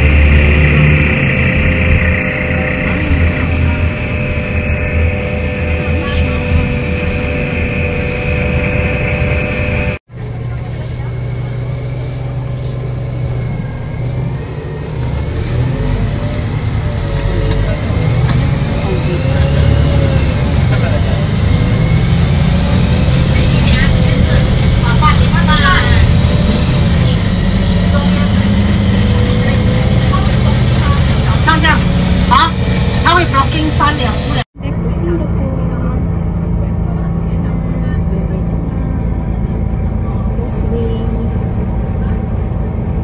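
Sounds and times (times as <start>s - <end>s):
bus engine and road noise: 0.0s - 43.0s
scattered voices: 1.2s - 7.7s, 15.8s - 43.0s.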